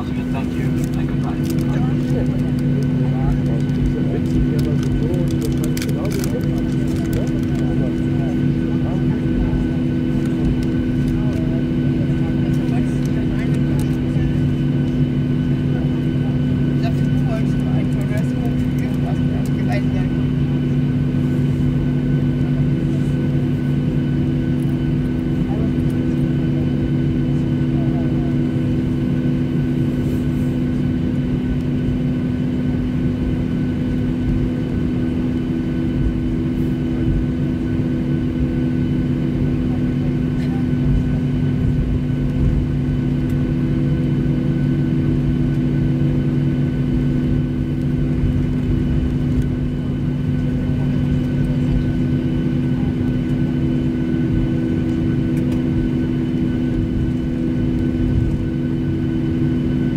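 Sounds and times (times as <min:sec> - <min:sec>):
jet engines at idle: 0:00.0 - 0:59.9.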